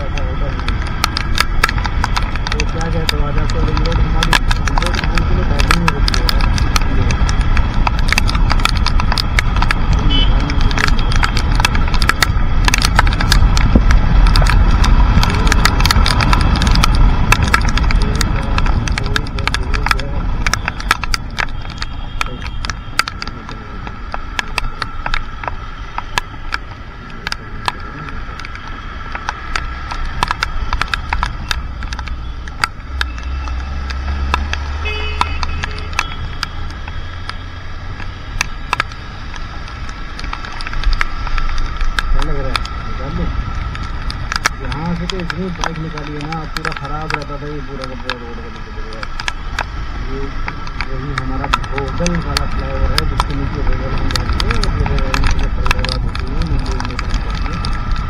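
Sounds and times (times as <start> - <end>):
raindrops ticking on camera: 0.0 - 58.0
wind and engine rush: 0.0 - 58.0.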